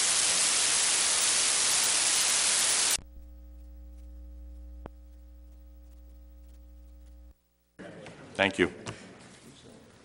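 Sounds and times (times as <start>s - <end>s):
loud static hiss: 0.0s - 7.4s
faint mains hum: 3.0s - 10.0s.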